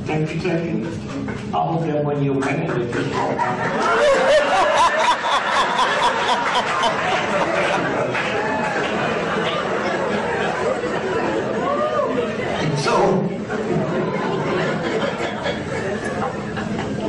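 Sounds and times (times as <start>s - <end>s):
audience talking in a large hall: 0.0s - 17.0s.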